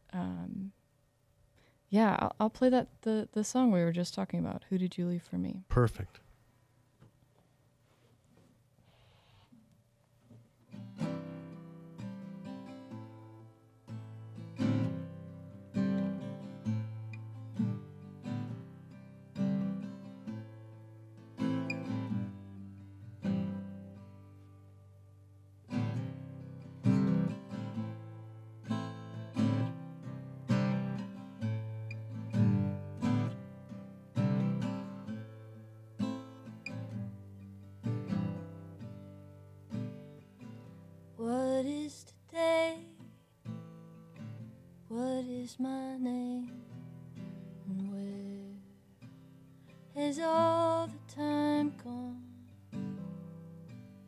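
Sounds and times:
acoustic guitar chords: 10.7 - 54.0.

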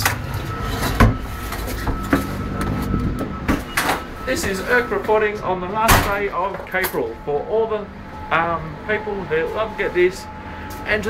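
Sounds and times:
faint steady whine: 0.0 - 11.0
train low rumble: 0.2 - 10.9.

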